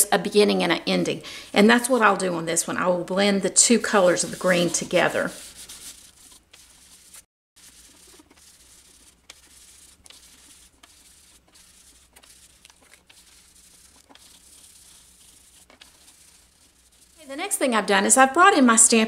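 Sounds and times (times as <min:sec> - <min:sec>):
foam sponge scuffing on cardstock: 0:03.9 - 0:17.4.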